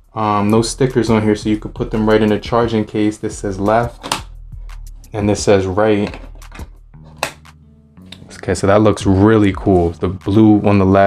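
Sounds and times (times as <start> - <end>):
soft background music: 0.0 - 11.0
earbud clicking into case: 3.9 - 4.4, 6.0 - 8.3.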